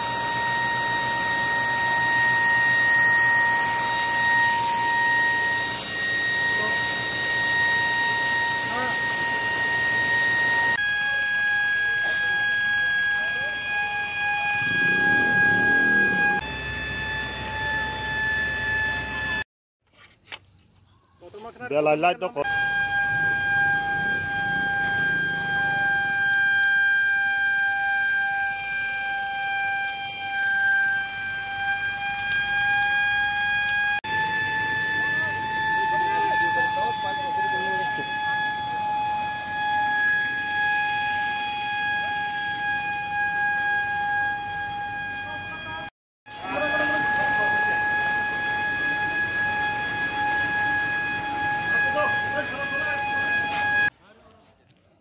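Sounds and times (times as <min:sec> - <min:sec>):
high-pitched electronic tone: 0:00.0 - 0:19.4, 0:22.4 - 0:53.9.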